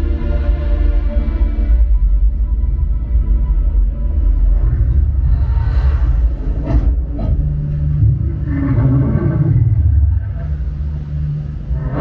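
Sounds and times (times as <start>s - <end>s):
deep bass rumble: 0.0s - 12.0s.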